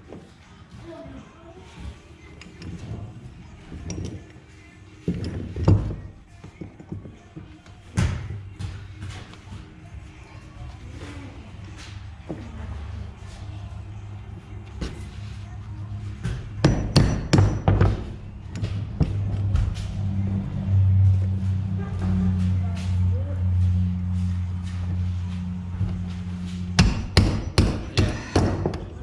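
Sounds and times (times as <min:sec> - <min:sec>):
hammer striking metal chain: 0:16.6 - 0:18.0
low hum: 0:18.1 - 0:28.0.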